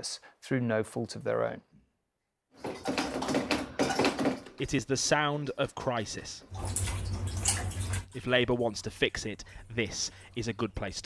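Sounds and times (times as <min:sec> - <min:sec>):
water dripping and splashing: 0:06.4 - 0:08.5.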